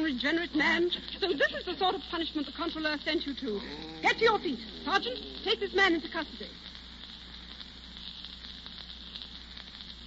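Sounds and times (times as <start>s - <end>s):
radio broadcast hiss and crackle: 0.0s - 10.0s.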